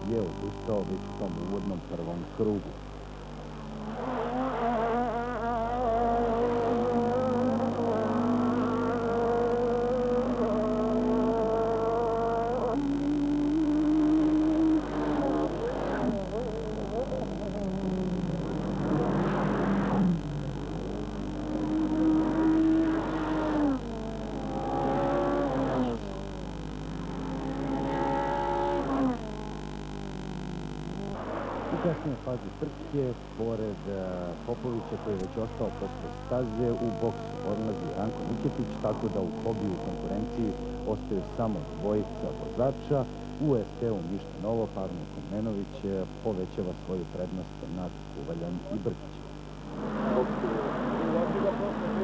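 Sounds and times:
racing car engines at high revs: 3.5 - 45.7, 48.8 - 52.0.

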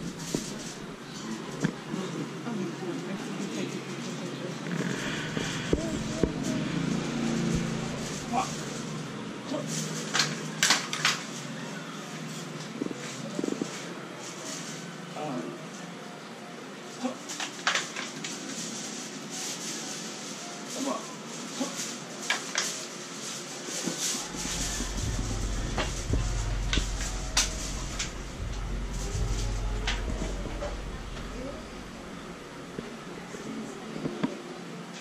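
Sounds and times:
murmured voices: 0.0 - 9.9, 22.9 - 35.0
low rumble: 5.0 - 8.3, 24.3 - 33.7.

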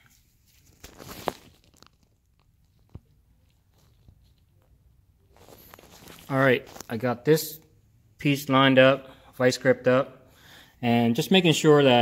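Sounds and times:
handling rustle: 0.3 - 7.0.

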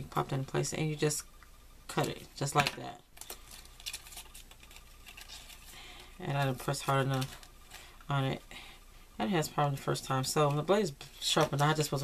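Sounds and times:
paper rustling: 2.6 - 7.9.

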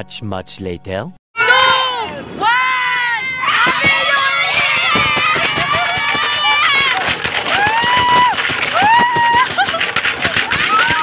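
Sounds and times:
children shouting and whooping: 1.4 - 11.0.

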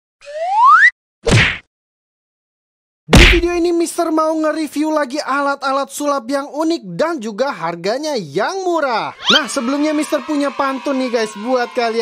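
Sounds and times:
short punchy hit: 3.1 - 3.6.

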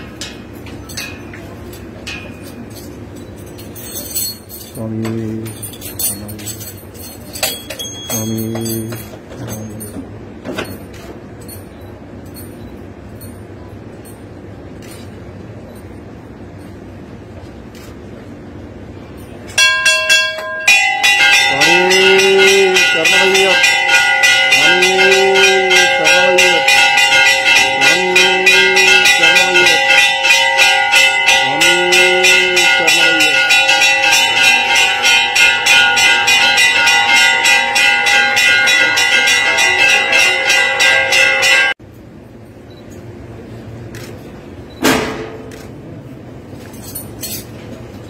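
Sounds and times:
temple bells ringing rapidly: 0.0 - 15.0, 19.1 - 41.8.

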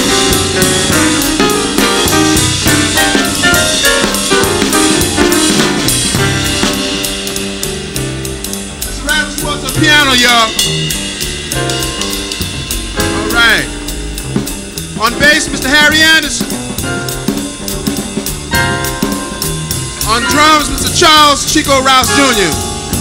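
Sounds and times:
drum kit playing: 0.0 - 23.0
jazz band playing: 0.0 - 23.0
walking bass line: 0.0 - 23.0
man speaking over pa: 8.9 - 10.6, 13.3 - 13.7, 15.0 - 16.5, 20.1 - 22.6.

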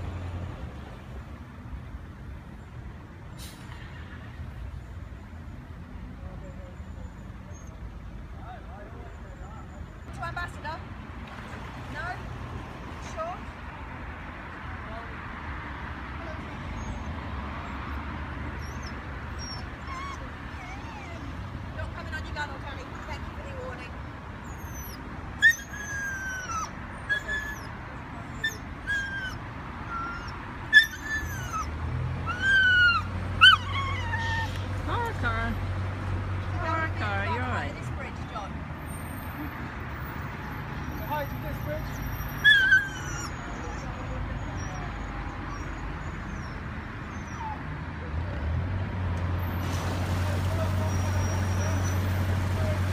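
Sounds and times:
puppy whimpering and whining: 18.6 - 21.4, 24.4 - 31.7, 32.3 - 34.6, 41.8 - 47.7, 51.0 - 52.1.

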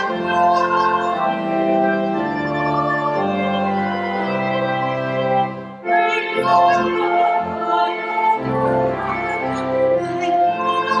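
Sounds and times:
church organ playing hymn chords: 0.0 - 11.0.

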